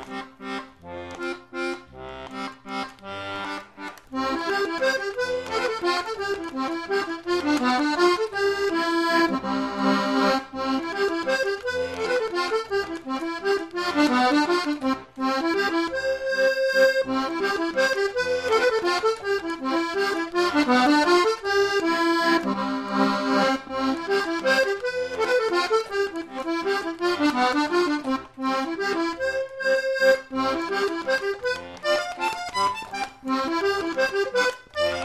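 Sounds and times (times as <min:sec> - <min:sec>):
lively instrumental music: 0:00.0 - 0:35.0.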